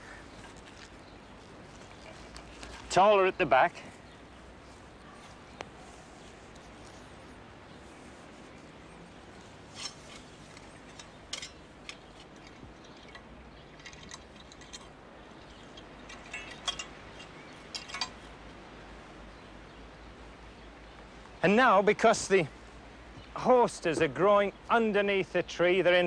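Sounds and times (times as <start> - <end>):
faint steady hiss: 0.0 - 26.0
hoe scraping soil and stones: 9.6 - 13.0.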